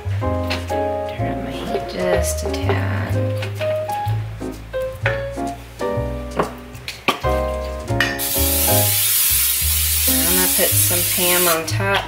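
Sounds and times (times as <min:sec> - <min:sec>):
background music: 0:00.0 - 0:12.0
potato cakes sizzling in skillet: 0:08.1 - 0:12.0.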